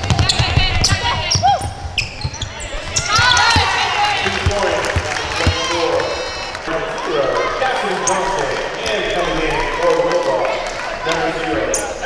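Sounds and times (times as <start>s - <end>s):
basketball bouncing on hardwood floor: 0.0s - 2.5s, 3.2s - 3.8s.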